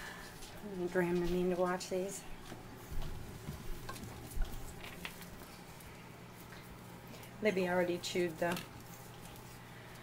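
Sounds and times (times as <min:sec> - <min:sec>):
low steady hum: 0:00.0 - 0:10.0
puppy rustling over toys: 0:00.2 - 0:10.0.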